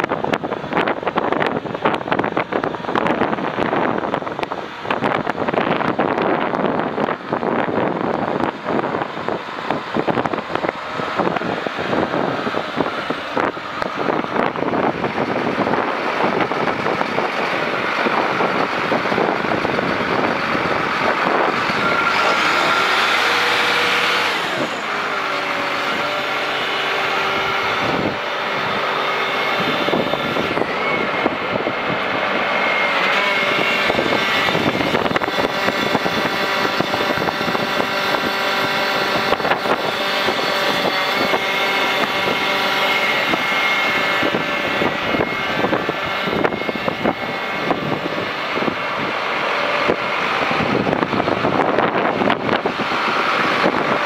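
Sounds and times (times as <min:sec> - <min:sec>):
steady whine: 0:00.0 - 0:54.0
tractor diesel engine running: 0:00.0 - 0:54.0.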